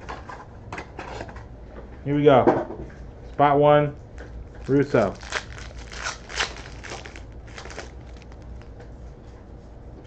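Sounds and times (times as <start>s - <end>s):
plastic wrapper crinkling: 4.2s - 8.8s.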